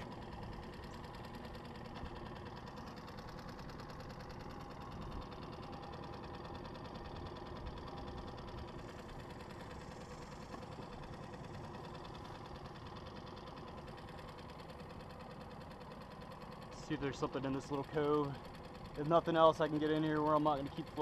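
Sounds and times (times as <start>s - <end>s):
outboard motor running: 0.0s - 21.0s.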